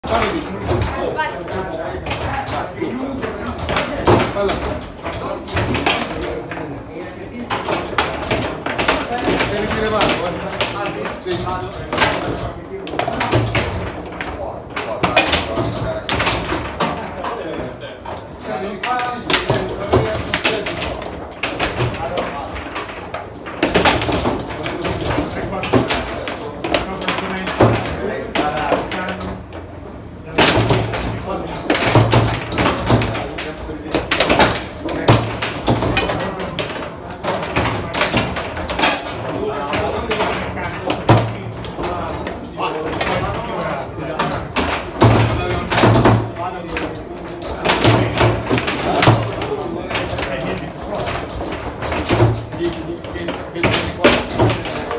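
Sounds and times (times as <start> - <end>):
foosball ball knocks and clacks: 0.0 - 54.9
people talking: 0.0 - 54.9.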